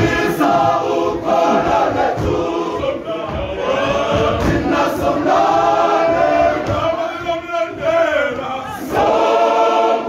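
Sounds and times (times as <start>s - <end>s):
male choir singing in harmony: 0.0s - 10.0s.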